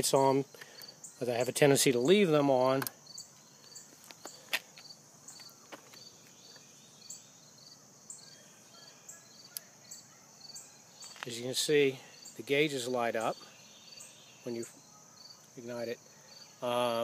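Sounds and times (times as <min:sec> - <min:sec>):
faint insect chirring: 0:00.0 - 0:17.0
steady high hiss: 0:00.0 - 0:17.0.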